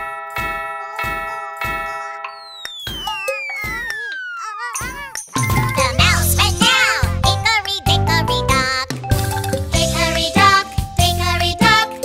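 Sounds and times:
cartoon clock chime striking: 0:00.0 - 0:06.2
long falling whistle: 0:02.4 - 0:04.6.

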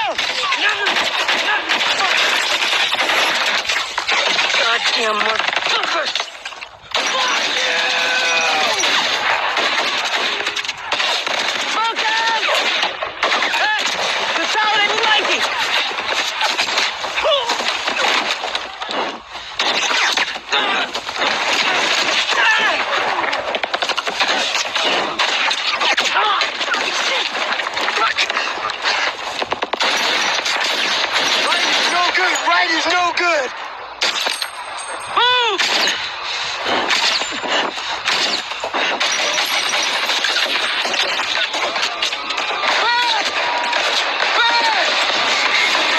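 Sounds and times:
automatic gunfire: 0:00.0 - 0:07.9, 0:08.6 - 0:32.2, 0:38.0 - 0:45.9
men shouting: 0:07.1 - 0:09.3.

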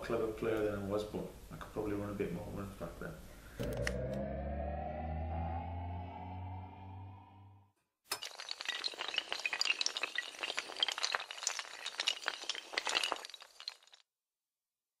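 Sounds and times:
low held tone: 0:03.6 - 0:07.6
dominoes toppling clatter: 0:08.2 - 0:14.0.

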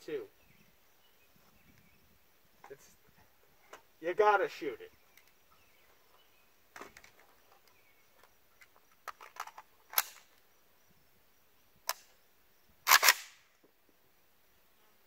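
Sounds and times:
small metallic clicks: 0:06.8 - 0:10.4
rifle single shots: 0:09.9 - 0:10.3, 0:12.8 - 0:13.5.

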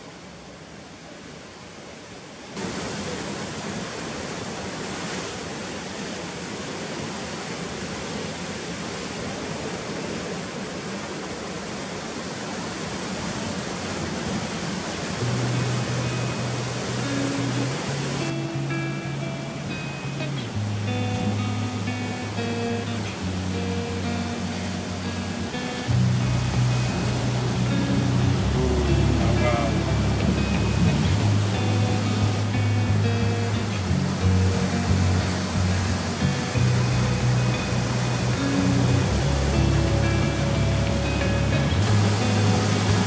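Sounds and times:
sea surf breaking on rocks: 0:02.4 - 0:43.0
guitar music: 0:15.2 - 0:43.0.

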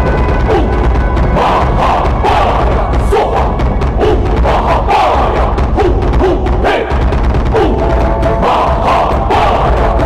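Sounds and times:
drum beats: 0:00.0 - 0:10.0
low rumble: 0:00.0 - 0:10.0
voices singing slow melody: 0:00.4 - 0:10.0.

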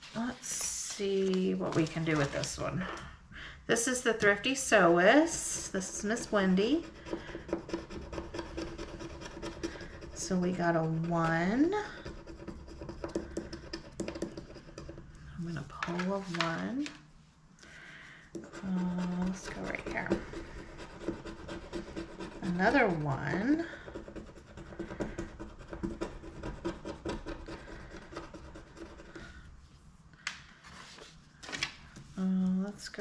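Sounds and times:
scratching a scratch-off card: 0:05.8 - 0:15.0, 0:18.4 - 0:29.3.

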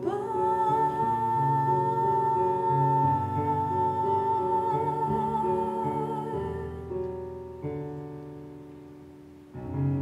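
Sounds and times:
woman singing with vibrato: 0:00.0 - 0:07.0
piano accompaniment: 0:00.0 - 0:10.0.

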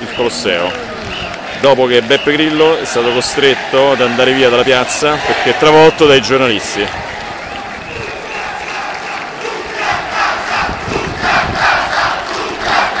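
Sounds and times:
crowd shouting rhythmic chant: 0:00.0 - 0:13.0
crowd voices: 0:00.0 - 0:13.0.

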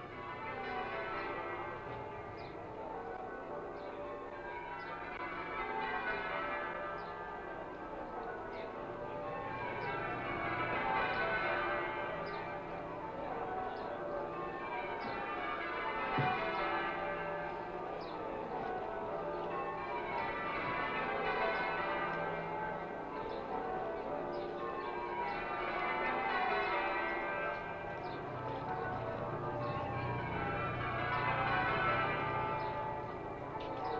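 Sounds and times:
church bells ringing: 0:00.0 - 0:33.9.

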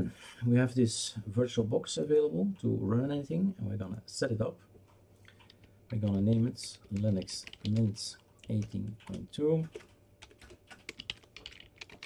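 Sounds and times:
computer keyboard typing: 0:05.3 - 0:12.0.

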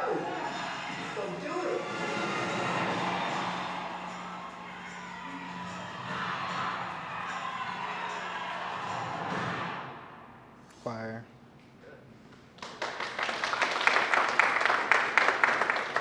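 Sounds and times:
music over loudspeakers: 0:00.0 - 0:10.0
crowd cheering: 0:00.0 - 0:10.3, 0:12.8 - 0:16.0.

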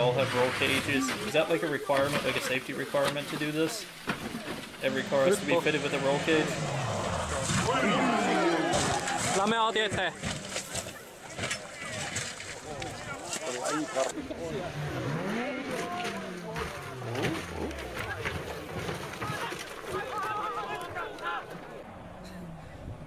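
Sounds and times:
rally car engine: 0:00.0 - 0:23.0
spectators' voices: 0:00.0 - 0:23.0.

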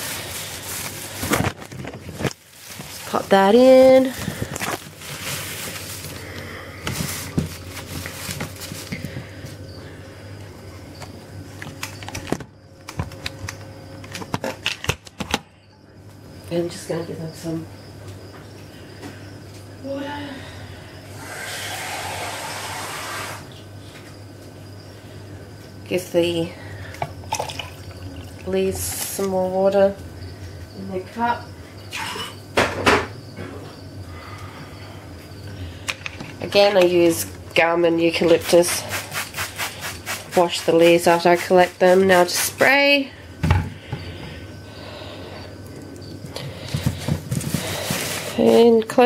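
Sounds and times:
water spraying hiss: 0:21.2 - 0:23.4
spray bottle misting hiss: 0:38.4 - 0:42.6.

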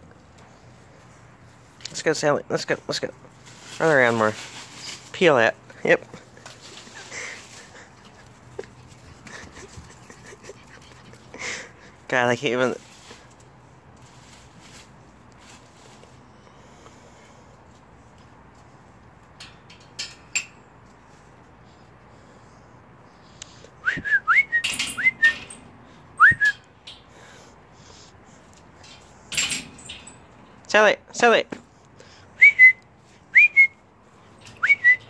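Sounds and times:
brief rustles: 0:03.4 - 0:05.2
person whistling rising notes: 0:23.8 - 0:25.4, 0:26.2 - 0:26.6, 0:32.4 - 0:33.8.

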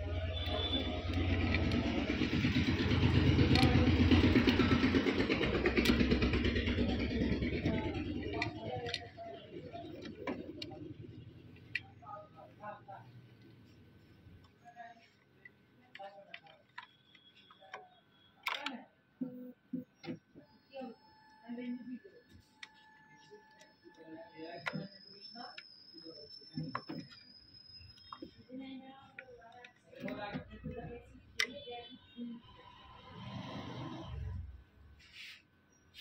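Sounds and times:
vehicle engine running: 0:00.0 - 0:14.4.

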